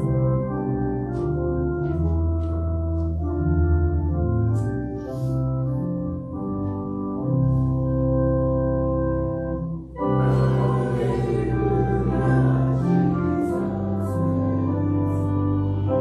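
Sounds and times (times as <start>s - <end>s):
organ playing a hymn: 0.0s - 16.0s.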